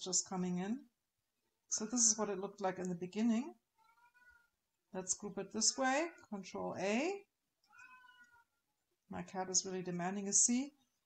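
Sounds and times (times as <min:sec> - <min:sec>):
cat meowing: 0:07.7 - 0:08.5.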